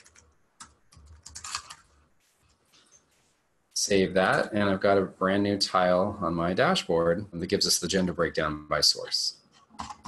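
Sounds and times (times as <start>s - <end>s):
computer keyboard typing: 0.0s - 1.9s, 9.7s - 10.0s.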